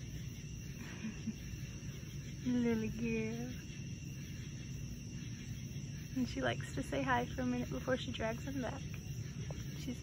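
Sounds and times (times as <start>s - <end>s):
faint low outdoor rumble: 0.0s - 10.0s.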